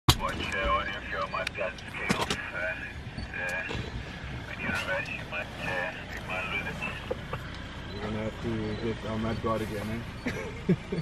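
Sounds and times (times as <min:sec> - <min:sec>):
sharp clicks: 0:00.1 - 0:02.6
people talking quietly: 0:00.1 - 0:11.0
vehicle engine humming: 0:00.1 - 0:11.0.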